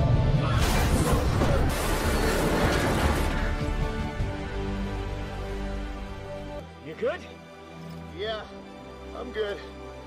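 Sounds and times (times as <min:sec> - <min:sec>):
orchestral film score: 0:00.0 - 0:10.0
metal crashing scrape: 0:00.6 - 0:03.6.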